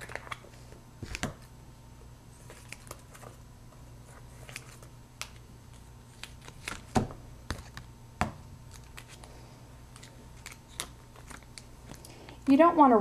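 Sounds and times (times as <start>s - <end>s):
plastic crinkling: 9.9s - 12.4s.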